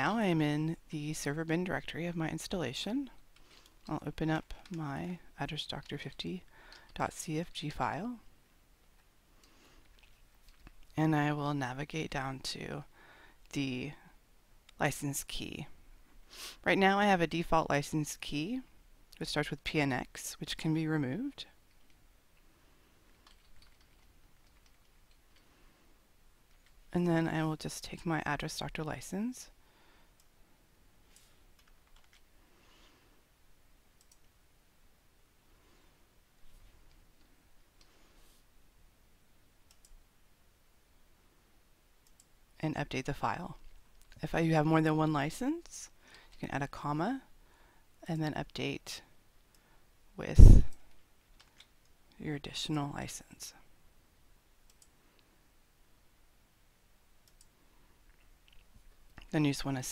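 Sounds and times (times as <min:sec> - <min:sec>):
faint computer mouse clicks: 0:54.7 - 0:55.3, 0:57.2 - 0:57.5.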